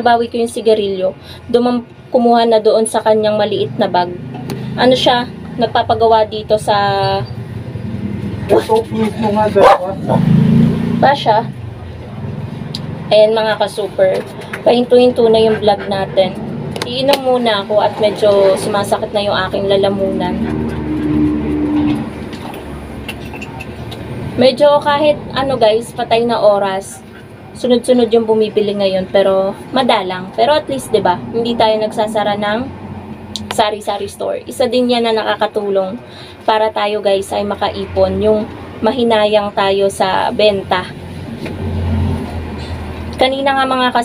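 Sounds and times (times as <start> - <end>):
traffic rumble: 0.0 - 44.0
vehicle engine drone: 0.7 - 44.0.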